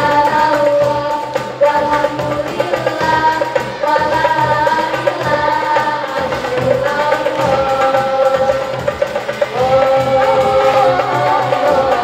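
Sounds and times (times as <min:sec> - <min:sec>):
hand drums beating: 0:00.0 - 0:12.0
singers holding a note: 0:00.0 - 0:12.0.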